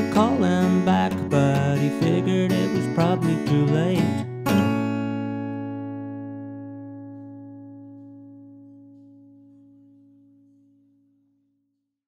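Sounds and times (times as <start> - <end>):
acoustic guitar chord ringing: 0.0 - 11.6.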